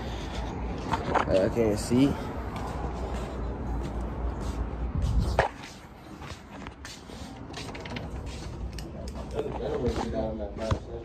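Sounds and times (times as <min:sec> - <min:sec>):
wind rumble on microphone: 0:04.8 - 0:05.5.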